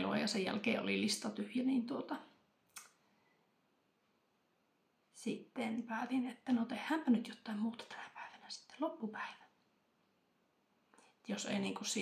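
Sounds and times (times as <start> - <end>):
mouth click: 2.7 - 3.0.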